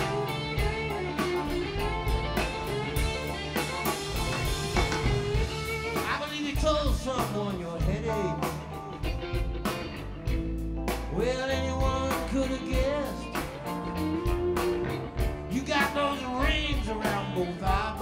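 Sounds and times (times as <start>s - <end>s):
country-rock band playing: 0.0s - 18.0s
man singing: 6.0s - 8.8s, 10.9s - 18.0s.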